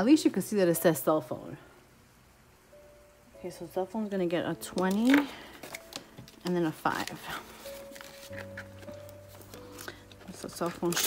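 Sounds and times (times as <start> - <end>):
paper banknotes rustling: 4.9 - 11.0.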